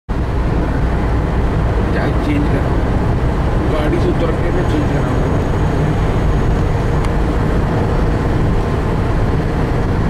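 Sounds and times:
road and wind noise: 0.1s - 10.0s.

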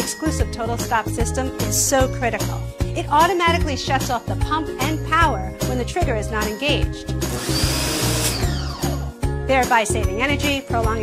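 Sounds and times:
motor winding down: 7.3s - 9.0s
pressure washer spraying: 7.4s - 8.5s.

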